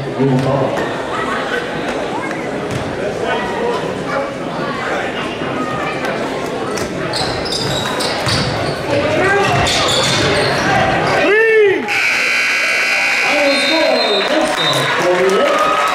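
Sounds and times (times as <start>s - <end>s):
crowd chatter and shouts: 0.0s - 15.9s
loud shout: 10.7s - 15.9s.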